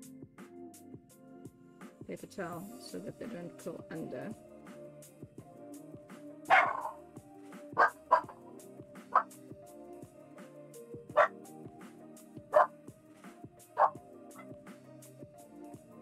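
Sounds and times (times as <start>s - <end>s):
background music: 0.0s - 16.0s
dog barking: 6.5s - 7.0s, 7.8s - 8.4s, 9.1s - 9.3s, 11.2s - 11.4s, 12.5s - 12.7s, 13.8s - 14.5s.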